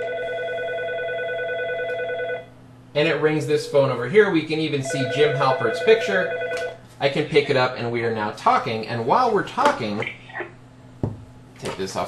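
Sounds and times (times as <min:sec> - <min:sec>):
desk phone electronic call tone: 0:00.0 - 0:02.5, 0:04.8 - 0:07.8.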